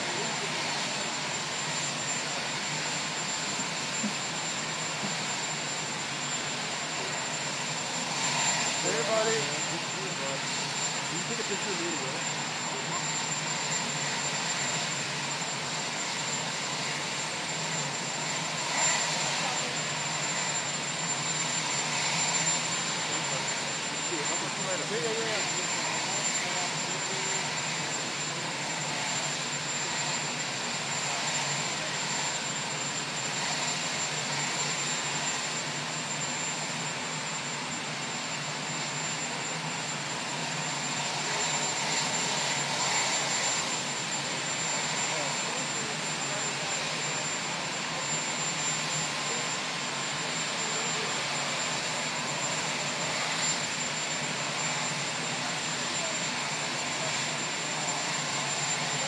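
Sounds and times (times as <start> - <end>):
engine with high whine: 0.0 - 59.0.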